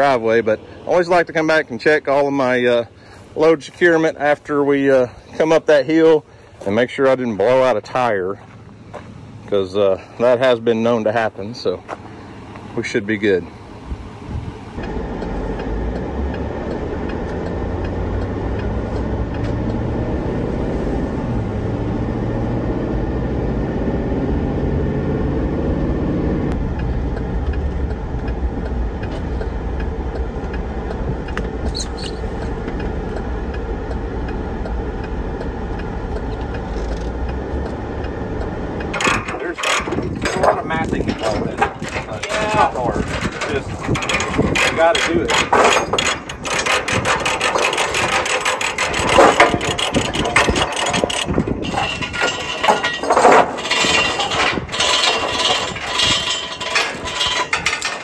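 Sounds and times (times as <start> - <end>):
truck engine and road noise: 0.0 - 58.0
metal chains clanking: 38.9 - 58.0.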